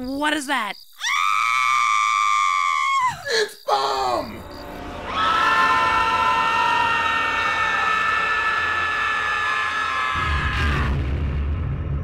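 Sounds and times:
deep rumble: 0:10.2 - 0:12.0.

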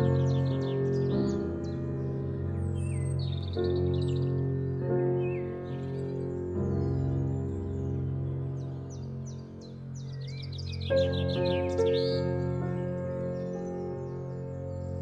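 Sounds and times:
bird chirps: 0:00.0 - 0:15.0
calm music of sustained chords: 0:00.0 - 0:15.0.

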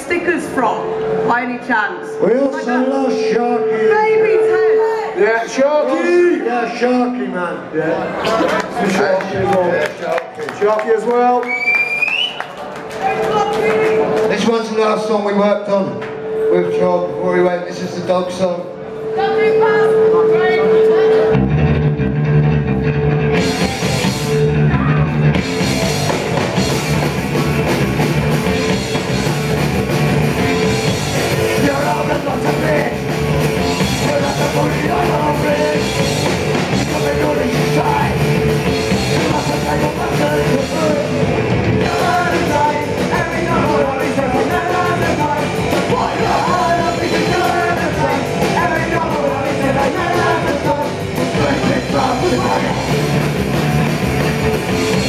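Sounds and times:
distorted electric guitar: 0:00.0 - 0:06.0, 0:16.0 - 0:55.0
bass guitar: 0:18.8 - 0:55.0
punk rock band playing: 0:18.8 - 0:55.0
drums: 0:20.9 - 0:55.0
person singing: 0:31.5 - 0:33.1, 0:33.7 - 0:38.3, 0:39.0 - 0:41.2, 0:41.8 - 0:53.0.

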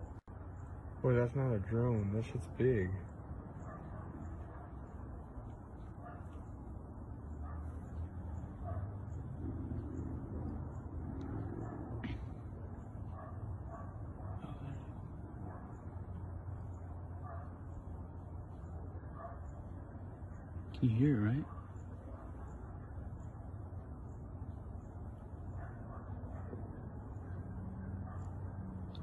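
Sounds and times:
distant low hum: 0:00.0 - 0:29.0.

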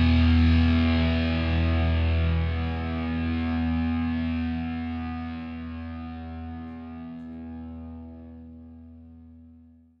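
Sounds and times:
distorted electric guitar chord: 0:00.0 - 0:09.8.

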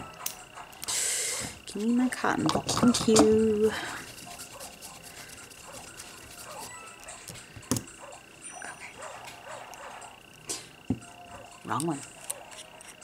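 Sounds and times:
faint high whine: 0:00.0 - 0:13.0.

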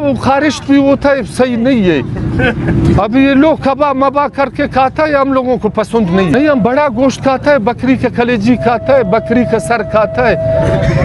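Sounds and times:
motor vehicle rumbling: 0:00.0 - 0:11.0
man talking: 0:02.9 - 0:11.0
faint voices: 0:05.9 - 0:11.0.

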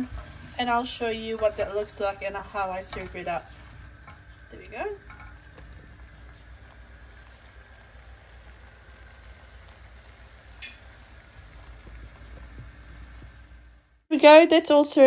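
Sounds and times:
curry sizzling in a pan: 0:00.0 - 0:14.1.

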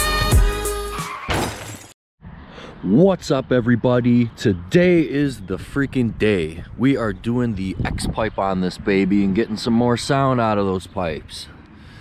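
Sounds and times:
crashing burst like shattering glass: 0:01.2 - 0:02.0
man speaking: 0:02.8 - 0:11.6.

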